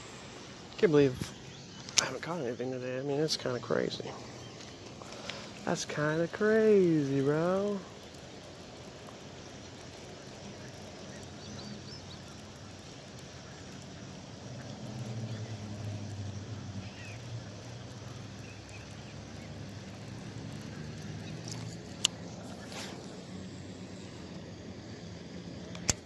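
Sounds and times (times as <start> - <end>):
faint outdoor background noise: 0.0 - 26.0
low engine hum: 10.0 - 26.0.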